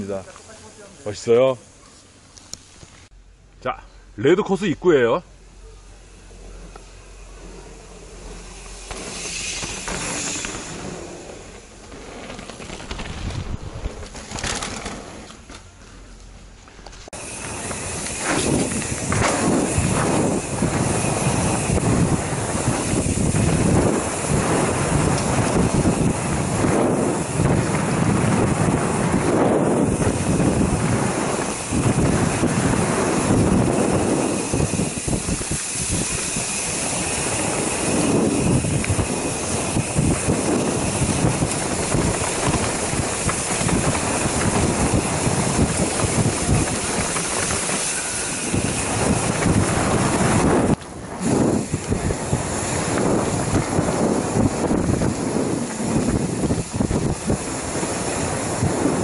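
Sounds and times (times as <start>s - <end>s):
bike rattling over bumps: 6.1s - 59.0s
tyre noise on dirt: 6.5s - 59.0s
wind on microphone: 12.7s - 14.6s, 17.2s - 59.0s.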